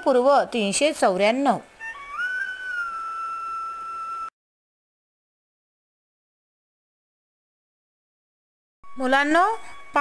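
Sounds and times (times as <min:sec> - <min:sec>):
high-pitched whistling tone: 0:01.8 - 0:04.4, 0:08.8 - 0:10.0.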